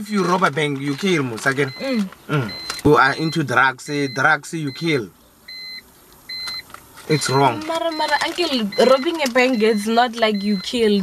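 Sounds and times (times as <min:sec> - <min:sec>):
high electronic beeps: 0:01.6 - 0:11.0.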